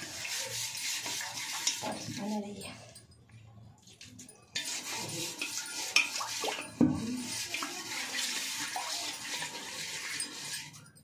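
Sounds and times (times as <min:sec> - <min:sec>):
wet mud rubbing on metal pot: 0:00.0 - 0:02.8, 0:04.5 - 0:11.0.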